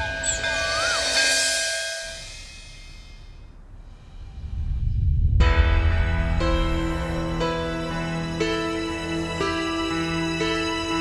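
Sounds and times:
low rumble: 0:02.4 - 0:08.4.

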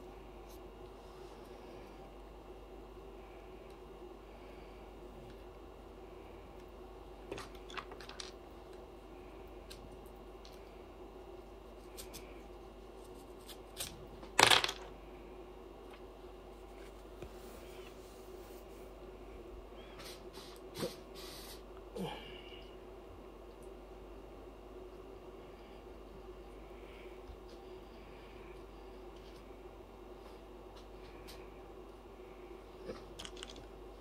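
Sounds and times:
steady low hum: 0:00.0 - 0:34.0.

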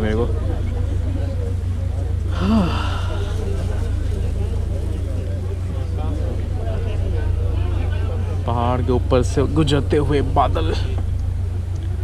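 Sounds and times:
passengers chattering: 0:00.0 - 0:12.0
ship low rumble: 0:00.0 - 0:12.0.

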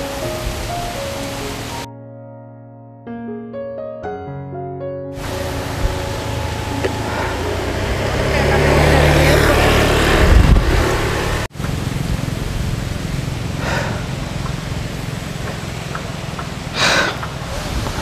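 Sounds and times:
outdoor background noise: 0:05.2 - 0:18.0
vehicle passing on road: 0:05.2 - 0:18.0.

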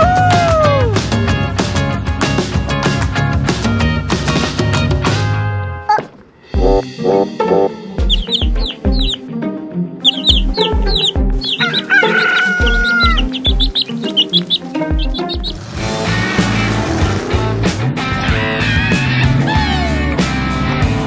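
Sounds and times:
background music: 0:00.0 - 0:21.0
guitar music: 0:06.6 - 0:21.0
cartoon chicks peeping: 0:08.0 - 0:09.2, 0:10.0 - 0:15.7
rooster crowing: 0:10.9 - 0:14.4.

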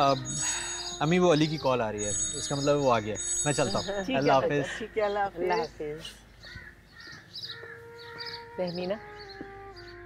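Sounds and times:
steady held tone: 0:00.0 - 0:04.7
small birds chirping: 0:00.0 - 0:10.0
crows cawing: 0:04.5 - 0:05.7, 0:06.4 - 0:08.5.

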